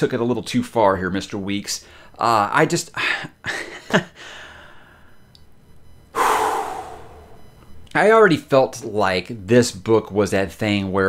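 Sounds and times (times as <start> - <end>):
man blowing out breath: 6.2 - 7.5.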